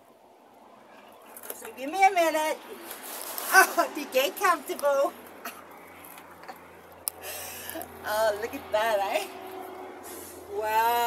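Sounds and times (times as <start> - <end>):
distant motorway traffic rumble: 0.0 - 11.0.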